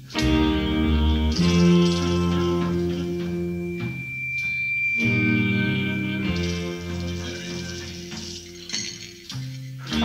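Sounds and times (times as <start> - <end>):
bass: 0.0 - 10.0
high held note: 0.1 - 8.9.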